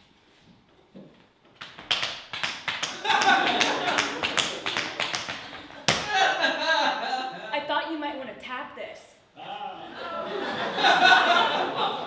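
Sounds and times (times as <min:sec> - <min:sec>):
loud foot stamp: 0:01.6 - 0:06.2.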